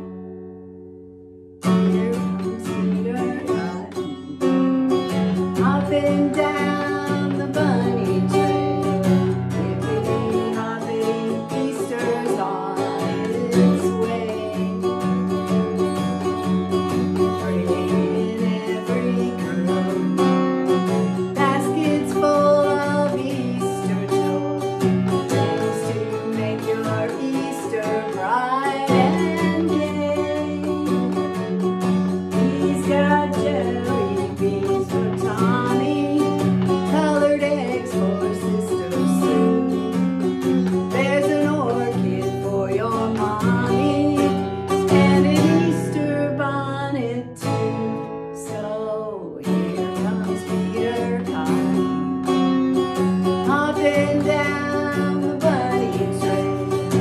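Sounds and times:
strummed acoustic guitar: 0.0s - 57.0s
woman singing: 1.6s - 57.0s.

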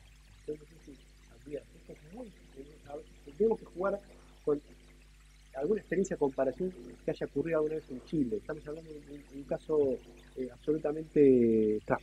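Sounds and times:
low electrical hum: 0.0s - 12.0s
man speaking softly: 0.5s - 4.6s, 5.6s - 12.0s.

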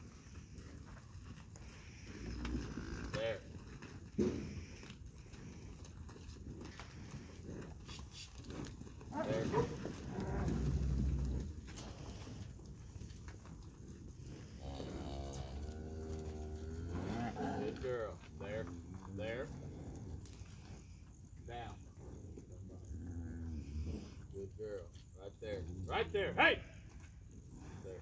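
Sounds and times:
cattle mooing: 14.5s - 20.0s.

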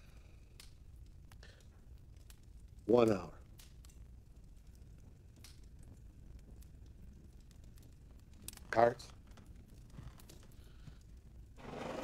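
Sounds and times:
faint clicks: 0.5s - 2.5s, 3.5s - 11.3s.

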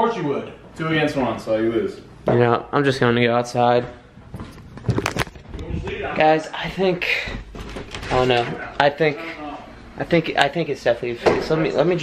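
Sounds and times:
camera handling rustle: 4.5s - 5.5s.

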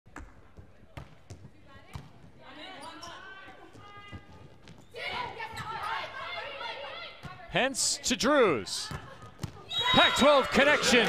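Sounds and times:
volleyball bouncing on court: 0.1s - 2.4s, 8.8s - 10.1s
crowd voices and shouts: 9.6s - 11.0s.

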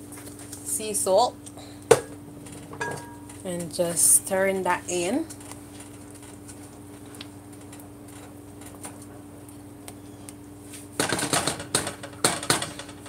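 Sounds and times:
steady low hum: 0.0s - 12.2s.

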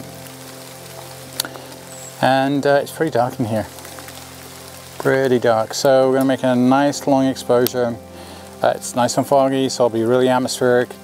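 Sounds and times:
rain falling in a forest: 0.0s - 11.0s
soft background music: 0.0s - 11.0s.

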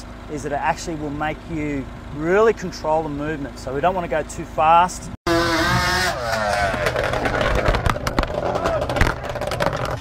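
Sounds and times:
drag racing engine launching: 5.3s - 10.0s
sharp clicks and knocks: 6.5s - 10.0s.

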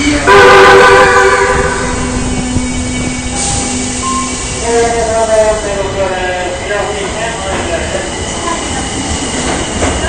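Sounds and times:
train low hum: 0.0s - 10.0s.

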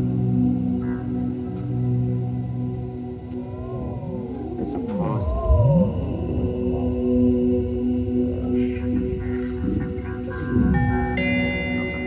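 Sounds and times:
electronic drone with sweeping pitches: 0.0s - 12.0s.

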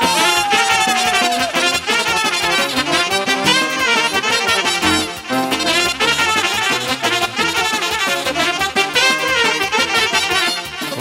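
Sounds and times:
brass lead melody: 0.0s - 11.0s
live band playing dance tune: 0.0s - 11.0s.

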